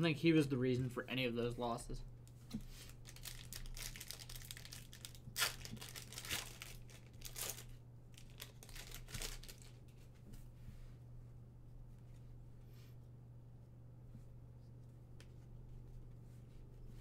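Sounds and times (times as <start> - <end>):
steady low hum: 0.0 - 17.0
wrapper crinkling and tearing: 2.9 - 9.9.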